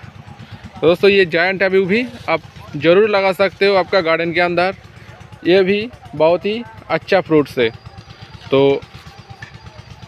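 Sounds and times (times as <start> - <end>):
small engine idling: 0.0 - 10.0.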